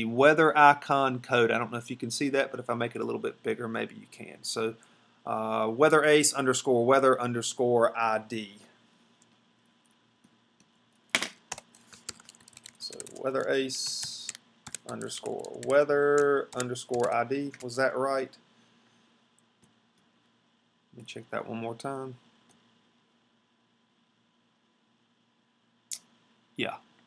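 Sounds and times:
faint background hiss: 0.0s - 27.0s
computer keyboard typing: 11.2s - 17.8s.

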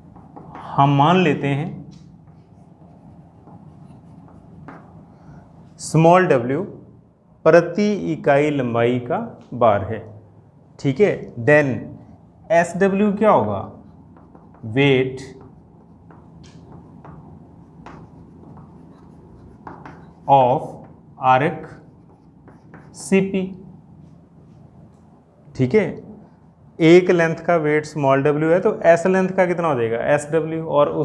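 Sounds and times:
chalk scratching on blackboard: 2.2s - 5.0s, 13.9s - 21.0s, 21.6s - 23.1s
man speaking: 20.2s - 21.9s.

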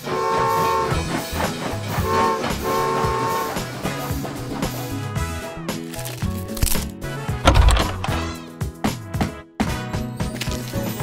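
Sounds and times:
toy train whistle tooting: 0.0s - 1.2s, 2.0s - 3.6s
bouncy background music: 1.0s - 11.0s.

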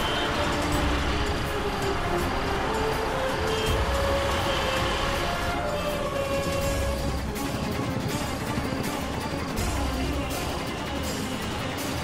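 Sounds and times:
dramatic background music: 0.0s - 12.0s
rumble of road vehicles: 0.0s - 12.0s
van idling: 0.0s - 12.0s.

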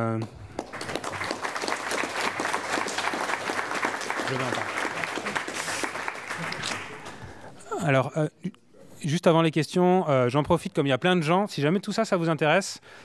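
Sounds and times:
audience applauding: 0.5s - 7.5s.

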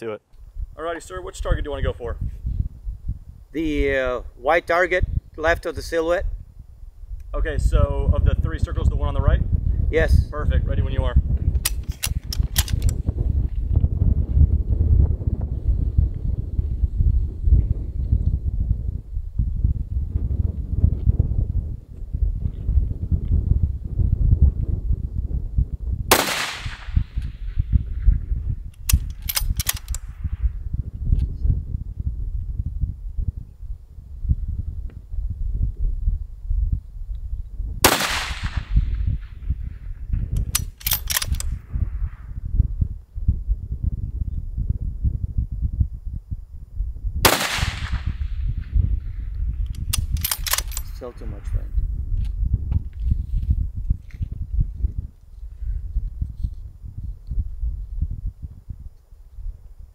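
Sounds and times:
wind rumble on microphone: 0.0s - 59.9s
rifle bolt clicks: 11.6s - 13.0s, 28.8s - 30.1s, 40.3s - 41.6s, 49.7s - 51.0s
rifle shots: 26.1s - 27.4s, 37.8s - 39.4s, 47.2s - 48.4s.

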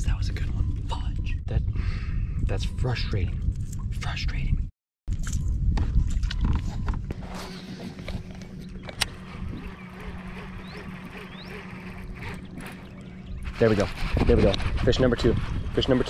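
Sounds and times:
fishing reel whirring: 8.4s - 16.0s.

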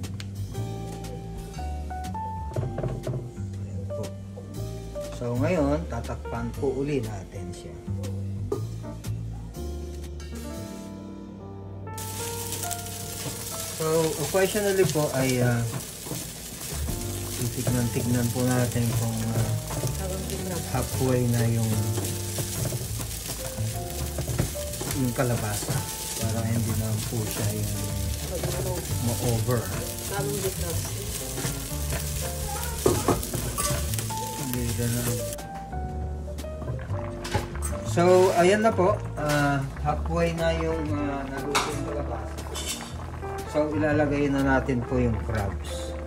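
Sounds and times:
background music with held notes: 0.0s - 46.0s
pot simmering hiss: 12.0s - 46.0s.

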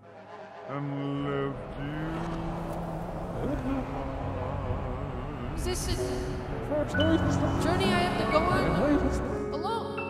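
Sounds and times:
car driving past: 0.0s - 9.4s.

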